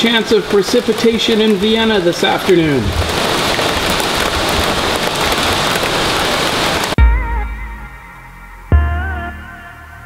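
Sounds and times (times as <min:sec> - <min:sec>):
steady rain falling: 0:00.0 - 0:07.0
music with deep bass hit: 0:07.0 - 0:10.0.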